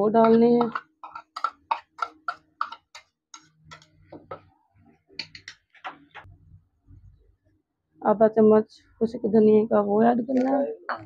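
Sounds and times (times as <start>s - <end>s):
spoon clinking on ceramic bowl: 0.2s - 4.5s.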